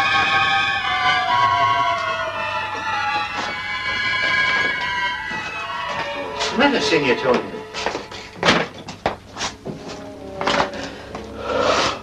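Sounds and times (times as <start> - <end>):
film score with held notes: 0.0 - 12.0
noisy swell: 9.2 - 12.0.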